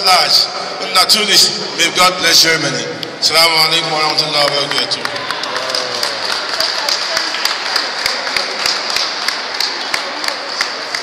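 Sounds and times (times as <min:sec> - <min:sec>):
people applauding: 0:03.9 - 0:11.0.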